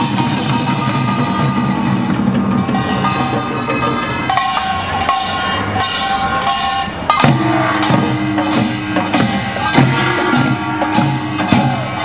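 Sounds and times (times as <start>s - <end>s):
drums struck in driving rhythm: 0.0s - 12.0s
ringing metallic tones: 0.0s - 12.0s.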